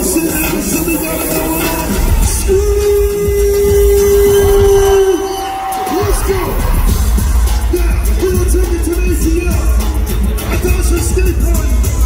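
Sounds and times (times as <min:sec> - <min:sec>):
live concert music: 0:00.0 - 0:12.0.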